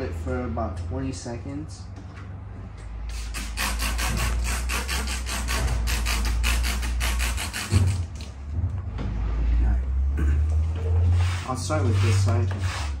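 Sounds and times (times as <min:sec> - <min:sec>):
fast hand rubbing: 0:03.2 - 0:08.0, 0:11.0 - 0:13.0.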